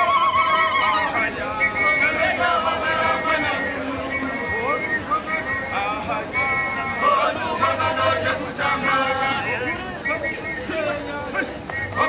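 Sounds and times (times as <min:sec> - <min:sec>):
women ululating: 0:00.0 - 0:01.3
group singing: 0:00.0 - 0:12.0.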